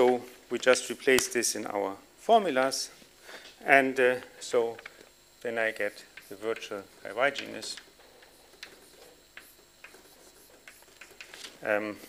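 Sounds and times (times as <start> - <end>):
chalk tapping on blackboard: 5.9 - 6.7, 7.4 - 11.4.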